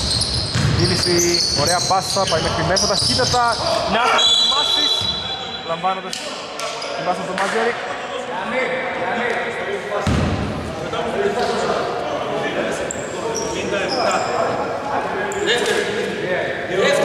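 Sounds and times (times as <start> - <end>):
players' voices echoing: 0.0 - 17.0
basketball bouncing on hardwood: 0.5 - 0.8.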